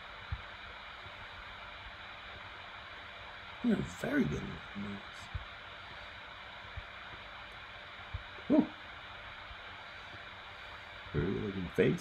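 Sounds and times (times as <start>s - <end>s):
recording hiss: 0.0s - 12.0s
man humming: 8.4s - 8.8s.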